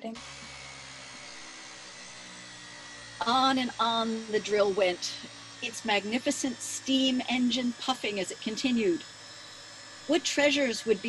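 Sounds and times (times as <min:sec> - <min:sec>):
steam-powered drill running: 0:00.0 - 0:11.0.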